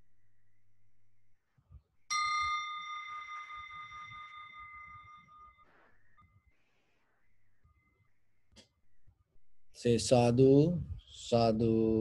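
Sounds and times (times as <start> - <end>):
meditation bell ringing: 2.1 - 6.4.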